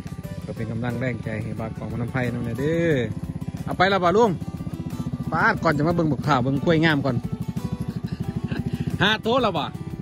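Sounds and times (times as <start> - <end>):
small motorcycle engine putter: 0.0 - 10.0.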